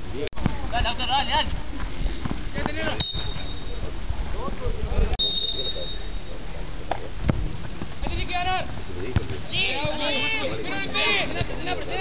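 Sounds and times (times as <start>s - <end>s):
high-pitched tone: 5.2s - 6.3s
wind rumble on microphone: 6.5s - 8.4s
people calling out: 9.5s - 12.0s.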